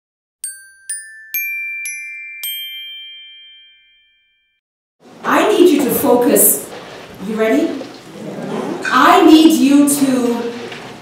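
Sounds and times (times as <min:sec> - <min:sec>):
bell-like jingle chimes: 0:00.4 - 0:04.6.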